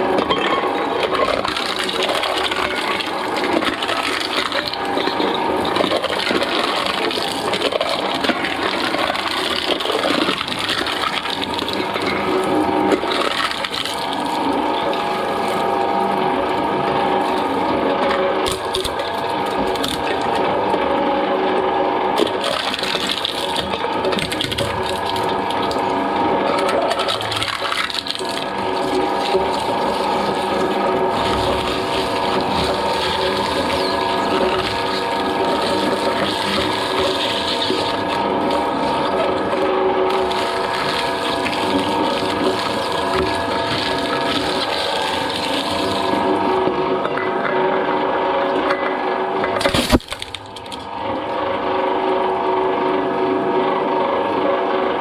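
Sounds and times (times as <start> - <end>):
shredder tearing cans: 0.0 - 20.7, 22.1 - 46.8, 49.5 - 50.9
shredder drive hum: 0.0 - 55.0.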